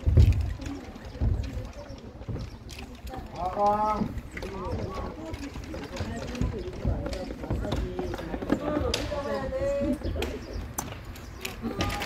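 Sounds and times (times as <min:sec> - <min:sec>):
people talking and calling: 0:00.0 - 0:12.0.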